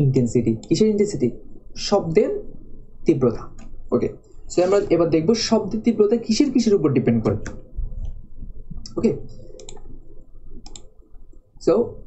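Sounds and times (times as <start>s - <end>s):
person speaking: 0.0s - 7.8s, 8.8s - 10.0s.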